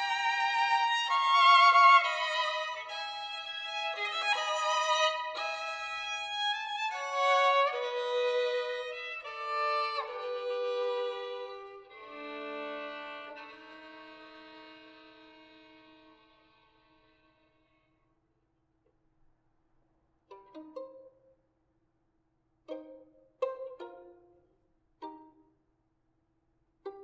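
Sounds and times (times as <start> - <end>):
solo violin bowed: 0.0 - 17.9, 20.3 - 21.3, 22.7 - 24.4.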